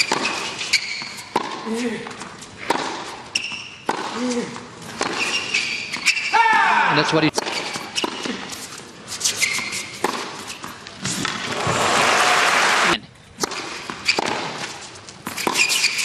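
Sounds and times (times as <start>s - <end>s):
tennis ball bouncing on court: 0.0s - 1.7s, 2.6s - 4.2s, 5.0s - 6.1s, 7.3s - 8.4s, 10.0s - 11.8s, 13.4s - 15.8s
crowd applauding: 11.5s - 13.0s.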